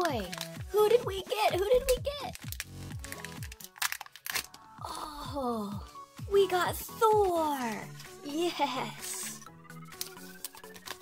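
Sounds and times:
plastic seal peeling and crinkling: 0.0 - 0.6, 1.2 - 4.7, 9.9 - 11.0
sharp plastic crackles: 0.0 - 4.7, 9.9 - 11.0.

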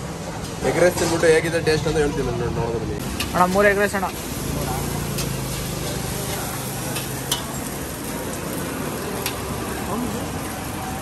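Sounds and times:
food sizzling in a wok: 3.0 - 11.0.

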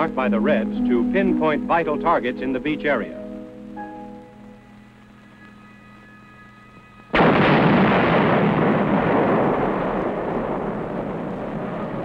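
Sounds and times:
demolition explosion: 7.1 - 12.0.

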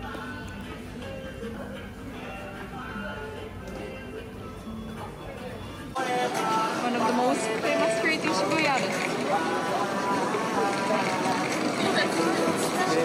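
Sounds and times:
music playing: 0.0 - 13.0
street noise: 0.0 - 13.0
voices of passers-by talking: 0.0 - 13.0.

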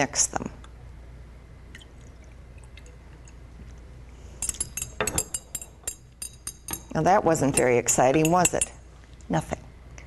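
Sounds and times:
liquid trickling: 1.7 - 3.8
glass test tubes clinking: 4.4 - 8.8.

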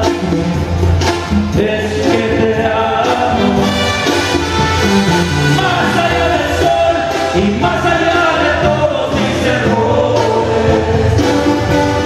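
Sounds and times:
live band accompaniment: 0.0 - 12.0
man singing long notes: 5.5 - 10.7.

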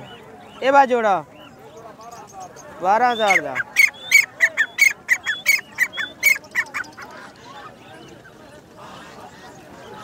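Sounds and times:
birds squawking: 0.0 - 10.0.

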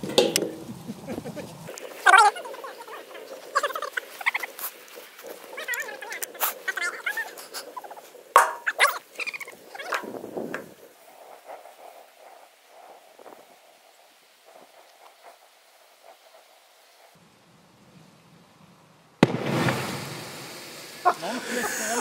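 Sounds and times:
fire crackling and popping: 0.0 - 22.0
high wavering calls: 0.6 - 10.2.

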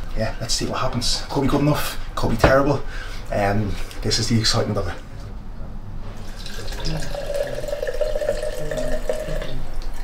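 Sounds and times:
liquid pouring into a glass: 6.2 - 10.0.

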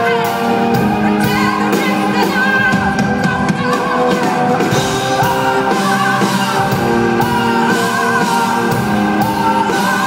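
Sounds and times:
electric guitar: 0.0 - 10.0
woman singing into microphone: 0.0 - 10.0.

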